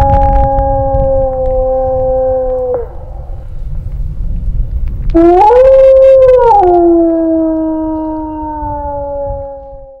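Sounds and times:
wolf howl through a megaphone: 0:00.0 - 0:03.0, 0:05.2 - 0:10.0.

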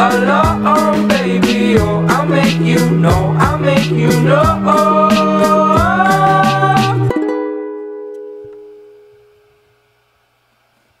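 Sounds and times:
ukulele chord ringing: 0:07.0 - 0:09.9.

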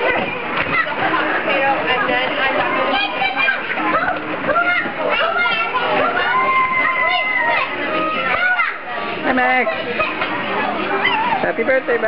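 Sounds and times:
children and adults chattering: 0:00.0 - 0:12.0.

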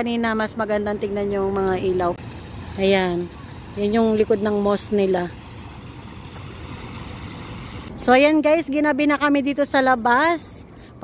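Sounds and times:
faint hiss: 0:02.2 - 0:08.2.

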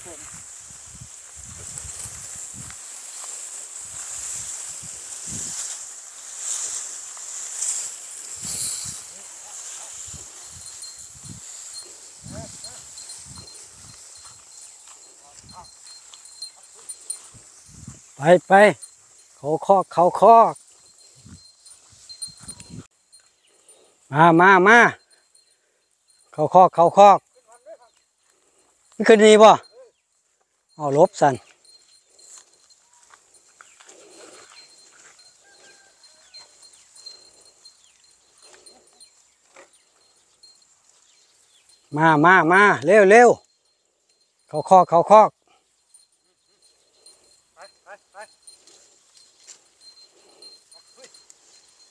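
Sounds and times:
footsteps through dry grass: 0:00.0 - 0:24.3, 0:27.2 - 0:42.2, 0:45.6 - 0:51.9
high insect trill: 0:00.0 - 0:51.9.

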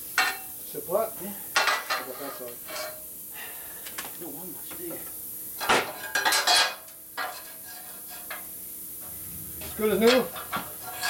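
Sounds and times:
metal parts clanking: 0:09.6 - 0:11.0.

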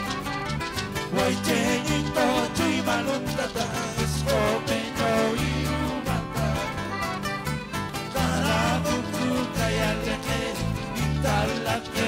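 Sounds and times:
electric bass line: 0:00.0 - 0:12.0
live band playing: 0:00.0 - 0:12.0.

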